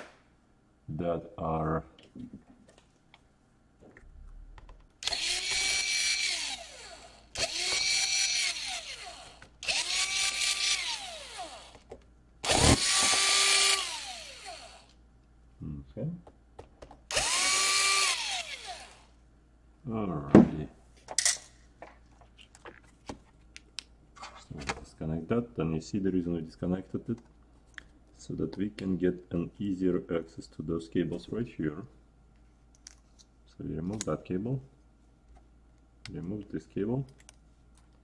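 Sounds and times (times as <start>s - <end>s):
cordless drill motor whine: 5.0s - 11.8s, 12.4s - 14.9s, 17.1s - 19.1s.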